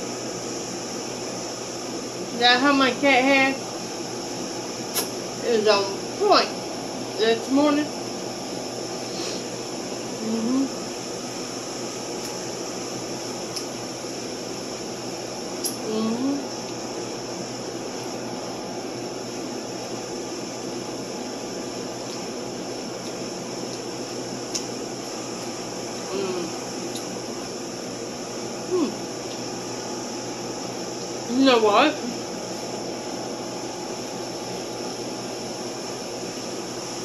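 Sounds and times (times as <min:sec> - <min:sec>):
ventilation machine hum: 0:00.0 - 0:37.0
woman humming mm while eating: 0:10.2 - 0:10.8, 0:15.6 - 0:16.5, 0:26.0 - 0:26.7, 0:28.7 - 0:29.1.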